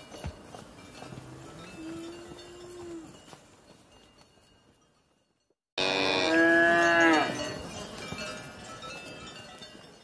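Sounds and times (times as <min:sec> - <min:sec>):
cow mooing: 0:05.8 - 0:07.4.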